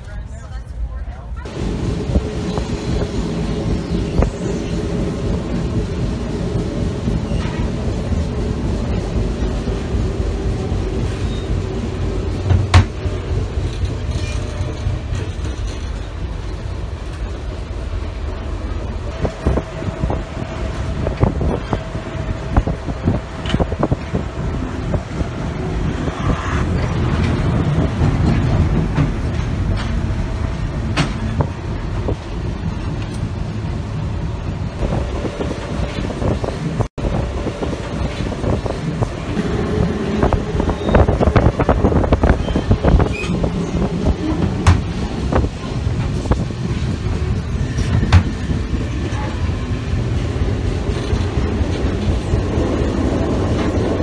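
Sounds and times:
train rumble inside carriage: 0.0s - 54.0s
rail clatter and knocks: 26.7s - 33.3s, 37.5s - 49.4s.

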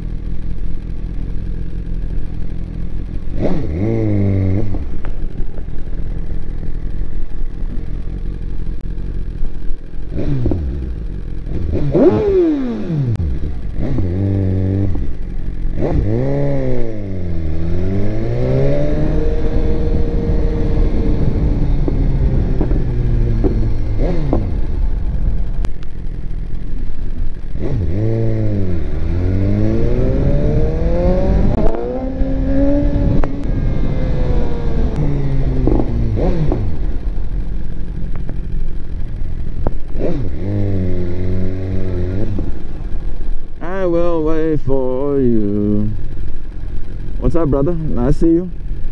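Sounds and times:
motorcycle engine revving: 0.0s - 48.9s.

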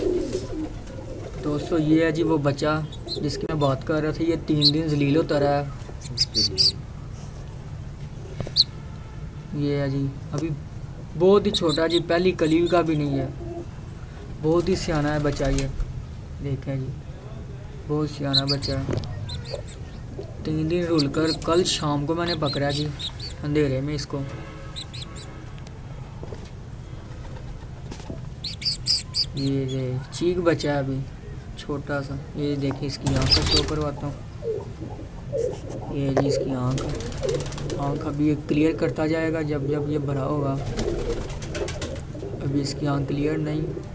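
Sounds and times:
birds chirping: 0.0s - 9.2s, 11.0s - 15.7s, 17.4s - 43.9s
low background rumble: 0.0s - 43.9s
low steady hum: 0.0s - 43.9s
high bird chirp: 6.0s - 6.8s, 18.3s - 23.4s, 24.6s - 25.4s, 28.4s - 29.8s, 33.0s - 33.7s.

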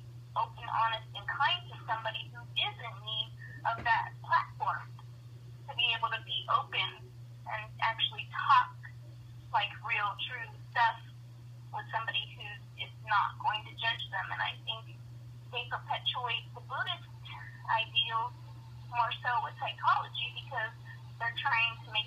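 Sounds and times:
steady low hum: 0.0s - 22.0s
person talking over telephone: 0.4s - 5.0s, 5.7s - 8.9s, 9.6s - 11.0s, 11.8s - 14.9s, 15.6s - 18.3s, 18.9s - 22.0s.

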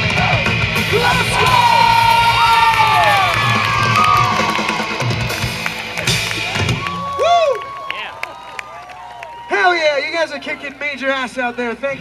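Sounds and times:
live rock band playing: 0.0s - 7.4s
crowd cheering and screaming: 0.0s - 10.6s.

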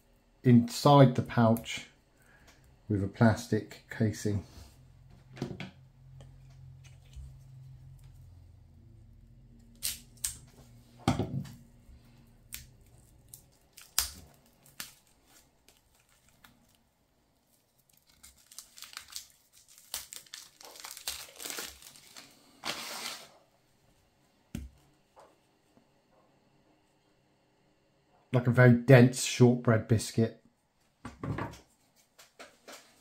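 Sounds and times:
plastic wrap crinkling and tearing: 9.6s - 10.6s, 12.4s - 23.4s
dry bar snapping: 9.7s - 10.5s, 12.5s - 16.1s.

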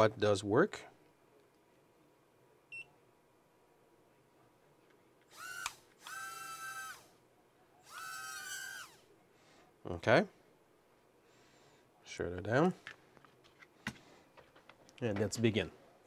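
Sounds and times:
quadcopter motors whining: 5.3s - 7.1s, 7.8s - 9.0s.

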